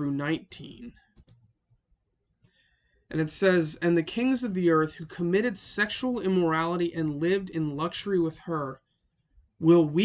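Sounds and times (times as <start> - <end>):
computer mouse clicks: 1.1 - 1.6.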